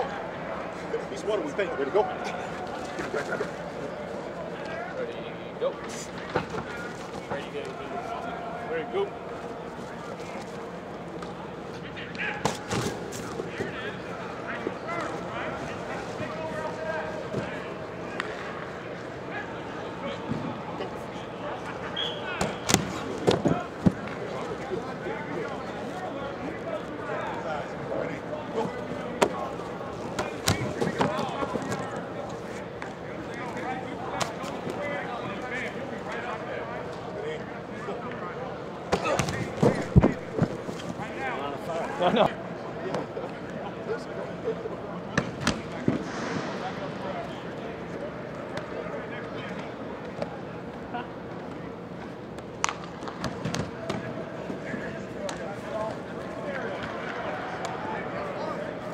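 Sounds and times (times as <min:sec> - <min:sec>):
people talking: 0:00.0 - 0:51.8, 0:53.4 - 0:58.9
murmur of distant voices: 0:00.0 - 0:58.9
footballs smacking into hands: 0:22.4 - 0:24.2, 0:30.1 - 0:31.8.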